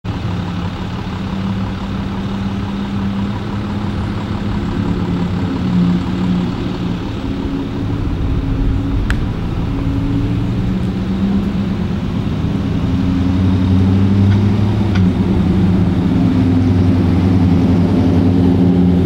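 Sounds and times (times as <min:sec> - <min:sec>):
vehicle engine drone: 0:00.0 - 0:19.0.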